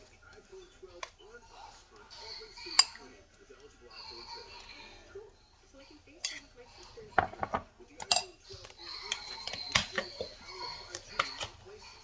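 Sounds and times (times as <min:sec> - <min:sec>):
metal spoon clinking on ceramic bowl: 0:06.2 - 0:06.5, 0:07.2 - 0:08.4.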